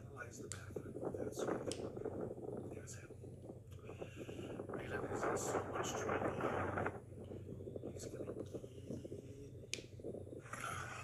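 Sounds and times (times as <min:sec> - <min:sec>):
man talking: 0:00.0 - 0:02.1
steady low hum: 0:00.0 - 0:11.0.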